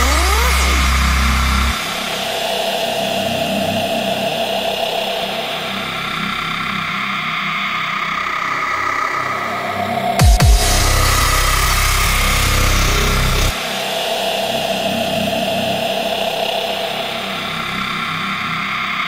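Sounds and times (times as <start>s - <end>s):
deep sustained bass note: 0.0s - 1.8s, 10.4s - 13.5s
rising pitch sweeps: 0.0s - 1.8s
dense engine-like synth texture: 0.0s - 7.1s.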